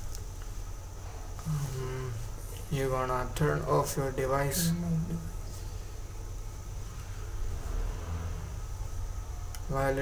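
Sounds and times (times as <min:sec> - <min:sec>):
faint hiss: 0:00.0 - 0:10.0
low background rumble and hum: 0:00.0 - 0:10.0.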